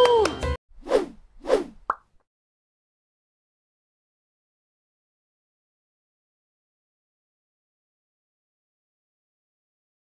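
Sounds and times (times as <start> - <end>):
quick swooshes: 0.8 - 1.9.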